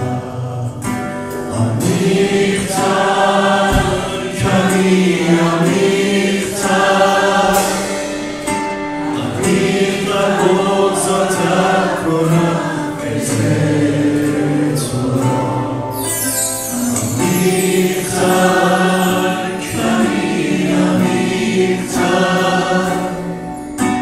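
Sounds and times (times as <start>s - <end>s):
strummed acoustic guitar: 0.0s - 24.0s
voices singing together: 0.0s - 24.0s.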